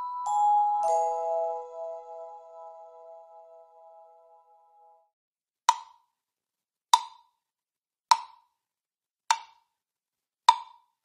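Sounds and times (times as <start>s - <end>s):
drumstick striking plastic block: 5.7s - 6.1s, 6.9s - 7.3s, 8.1s - 8.5s, 9.3s - 9.7s, 10.5s - 10.9s.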